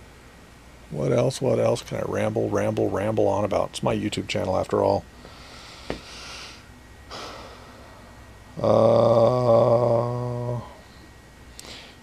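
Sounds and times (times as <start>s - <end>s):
soft breath: 5.2s - 8.3s, 10.6s - 12.0s.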